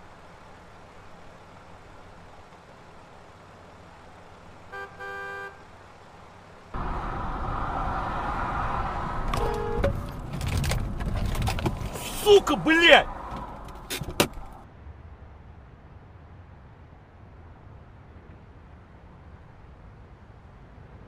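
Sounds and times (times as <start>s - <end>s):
faint traffic hum: 0.0s - 21.0s
road and engine noise inside car: 0.0s - 21.0s
car horn honking: 4.7s - 5.7s, 9.3s - 10.1s.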